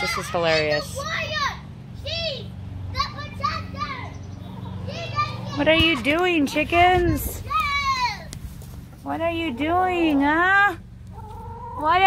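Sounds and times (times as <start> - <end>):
children calling: 0.0 - 12.0.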